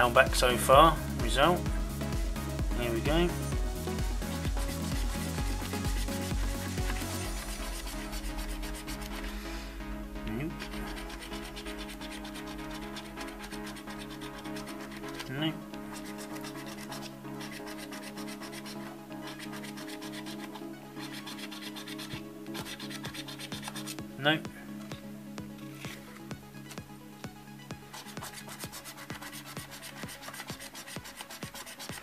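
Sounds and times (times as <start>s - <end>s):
background music: 0.0s - 32.0s
coin scraping scratchcard: 15.9s - 23.9s.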